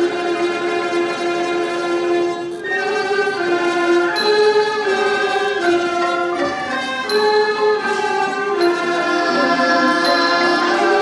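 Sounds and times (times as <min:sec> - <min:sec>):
bowed fiddles playing slow melody: 0:00.0 - 0:11.0.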